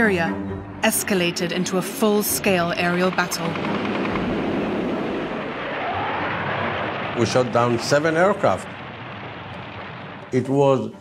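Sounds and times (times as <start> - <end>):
rapid aircraft cannon fire: 2.6 - 10.4.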